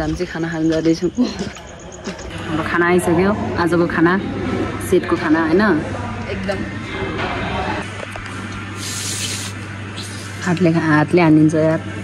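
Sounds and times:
steady low hum: 0.0s - 12.0s
brief hiss: 8.8s - 10.4s.

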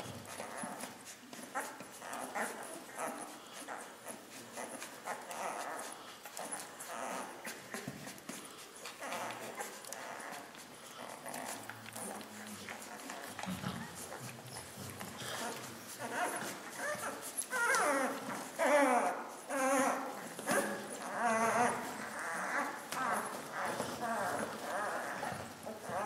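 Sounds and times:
puppies whining: 0.0s - 26.0s.

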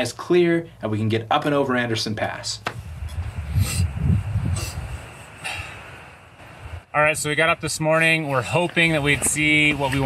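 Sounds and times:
wind rumbling on microphone: 2.7s - 10.0s
person sniffing: 3.5s - 5.8s.

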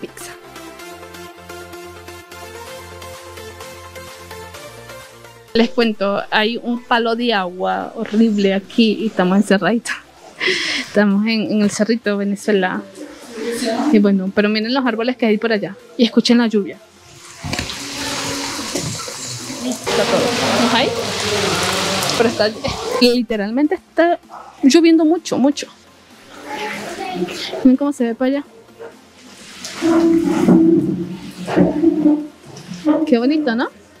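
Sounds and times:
heavy rain pouring: 17.2s - 23.0s.

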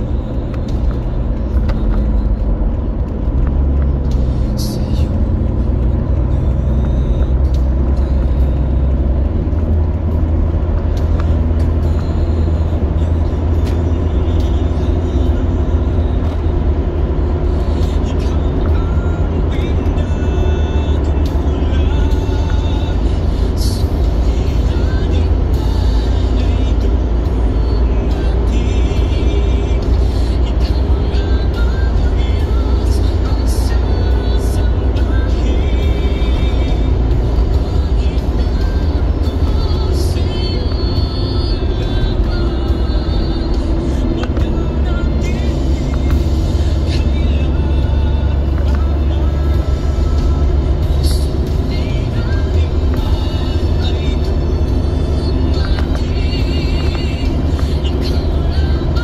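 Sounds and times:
car road rumble: 0.0s - 59.0s
music playing: 0.0s - 59.0s.

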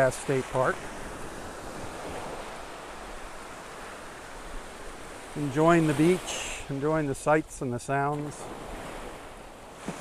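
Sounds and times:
waves breaking on sandy shore: 0.0s - 10.0s.

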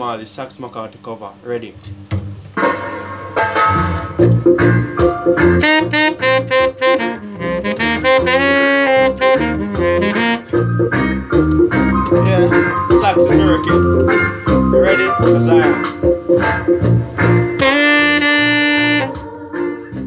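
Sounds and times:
backing track with bass and organ: 1.9s - 20.0s
tenor saxophone playing: 5.3s - 11.2s, 17.5s - 19.3s.

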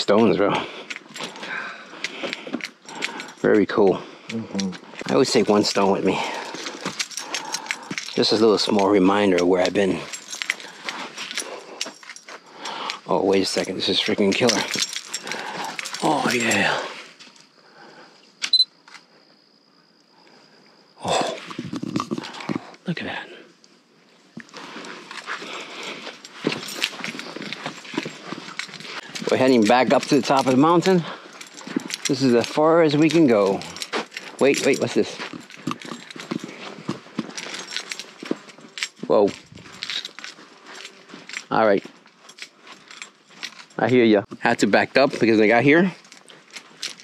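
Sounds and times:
footsteps on gritty trail: 0.3s - 3.9s, 4.7s - 17.4s, 24.3s - 47.0s
scuffing and rustling handling noise: 4.7s - 17.6s, 23.8s - 47.0s.

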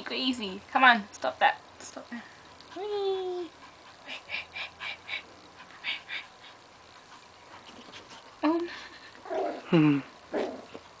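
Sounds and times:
puppy growls and yips: 9.2s - 9.7s, 10.3s - 10.8s.

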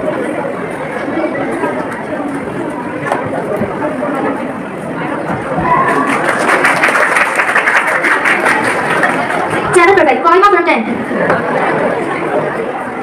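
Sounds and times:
murmur of audience: 0.0s - 13.0s
applause: 5.8s - 9.7s.

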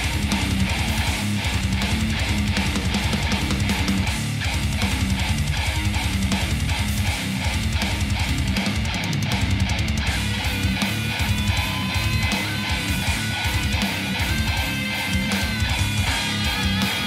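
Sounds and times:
heavy metal guitar riff: 0.0s - 17.0s.

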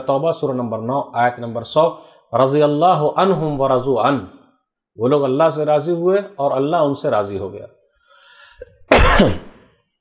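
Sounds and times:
soft intake of breath: 2.0s - 2.3s, 8.0s - 8.7s
man clearing throat: 8.9s - 9.7s.

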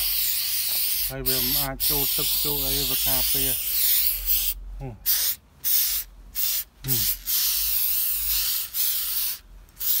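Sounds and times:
aerosol spray can hissing: 0.0s - 10.0s.

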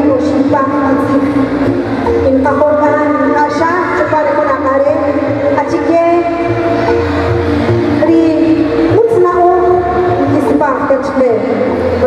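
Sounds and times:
woman's voice over public address: 0.0s - 6.9s, 8.0s - 12.0s.

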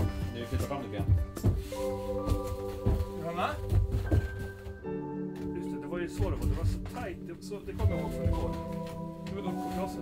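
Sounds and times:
dull thumps: 0.0s - 4.8s
person speaking: 5.4s - 10.0s.

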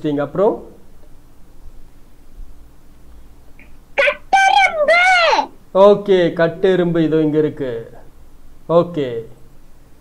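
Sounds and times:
child calling out: 4.0s - 5.6s.

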